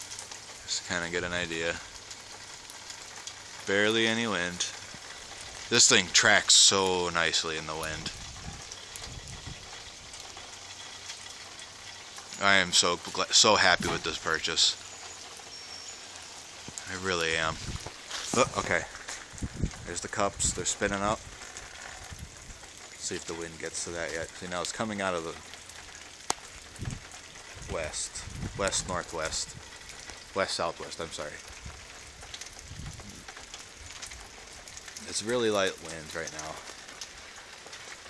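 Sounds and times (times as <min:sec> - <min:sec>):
light breeze hiss: 0:00.0 - 0:38.0
wind on microphone: 0:08.0 - 0:09.7, 0:17.5 - 0:18.6, 0:19.3 - 0:20.6, 0:22.0 - 0:22.6, 0:26.8 - 0:29.6, 0:32.6 - 0:33.2.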